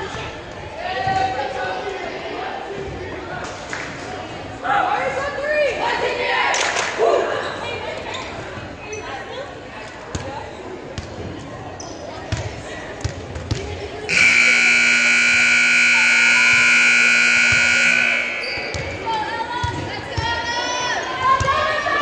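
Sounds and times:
scoreboard buzzer: 14.1 - 19.0.

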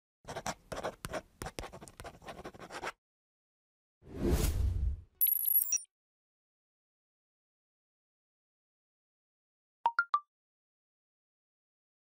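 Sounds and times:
pen scratching on paper: 0.3 - 3.0.

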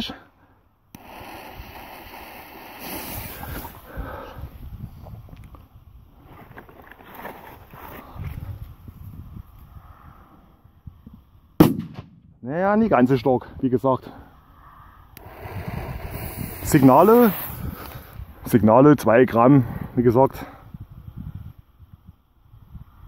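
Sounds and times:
firecracker bang: 11.6 - 12.3.

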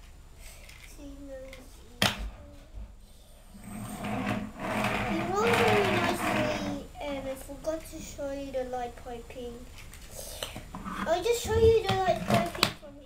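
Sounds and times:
child making buzzing sound: 4.1 - 7.0.

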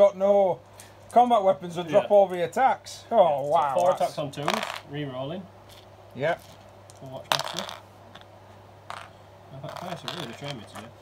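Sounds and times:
dice clattering on a board: 4.4 - 4.9, 7.3 - 8.3, 8.9 - 9.1, 9.7 - 10.9.

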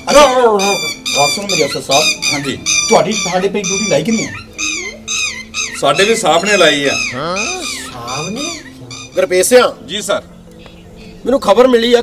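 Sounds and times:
background music: 0.0 - 12.0
voice wailing: 7.0 - 8.7.

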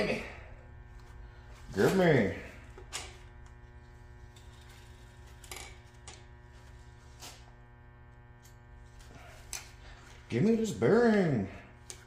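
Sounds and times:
electrical hum: 0.0 - 12.0.

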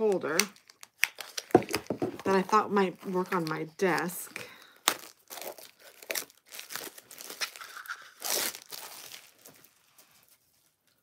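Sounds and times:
packaging crinkling and tearing: 0.1 - 1.9, 3.2 - 10.3.

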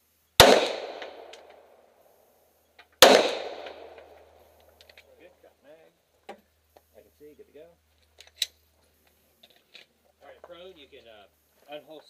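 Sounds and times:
pistol shots with echo: 0.4 - 1.7, 3.0 - 4.3.

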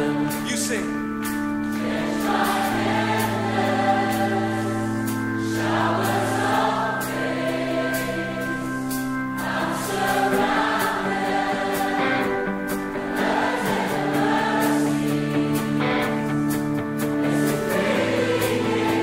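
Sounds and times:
choir singing gospel worship song: 0.0 - 19.0
sustained chords: 0.0 - 19.0.

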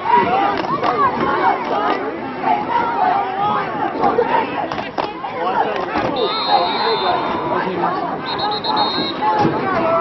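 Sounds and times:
crowd babble: 0.0 - 10.0
people chattering: 0.0 - 10.0.

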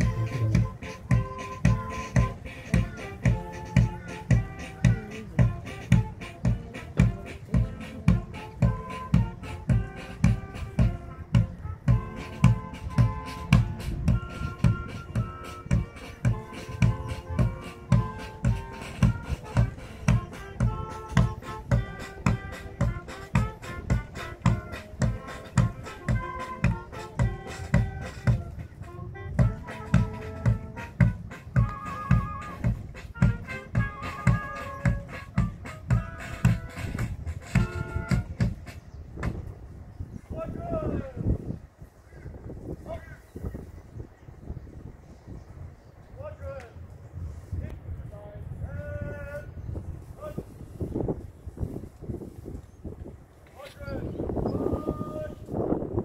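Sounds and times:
parade march music: 0.0 - 39.5.

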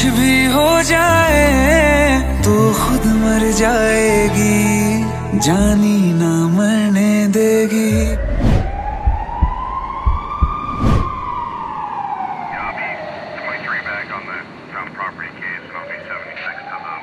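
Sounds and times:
police siren wailing: 7.9 - 14.6, 15.6 - 17.0
heavy thumps: 8.0 - 11.4.

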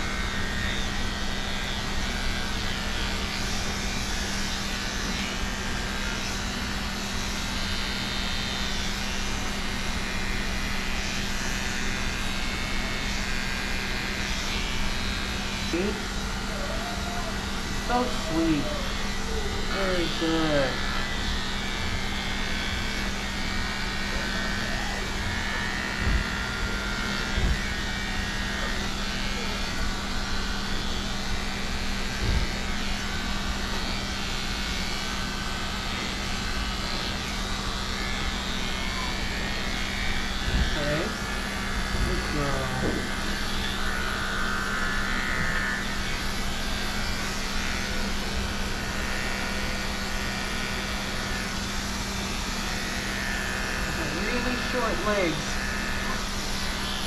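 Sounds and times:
electric clipper humming: 0.0 - 57.0.

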